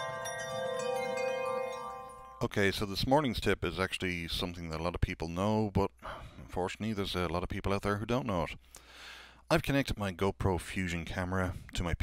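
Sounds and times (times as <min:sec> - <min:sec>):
ringing chime tones: 0:00.0 - 0:02.5.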